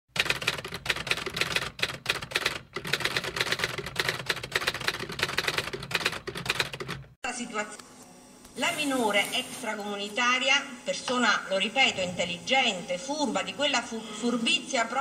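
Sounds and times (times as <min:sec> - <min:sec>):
typewriter keys clattering: 0:00.2 - 0:07.1.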